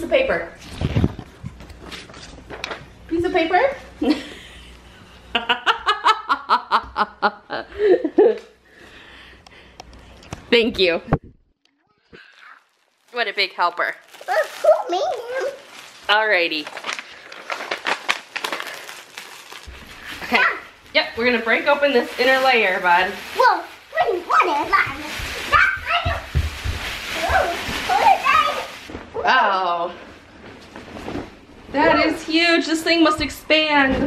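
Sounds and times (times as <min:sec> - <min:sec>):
plastic wrapping crinkling: 0:12.0 - 0:29.0.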